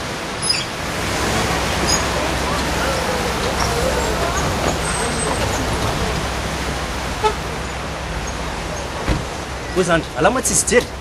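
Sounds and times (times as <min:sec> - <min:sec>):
car driving and stopping: 0:00.0 - 0:11.0
street noise: 0:00.0 - 0:11.0.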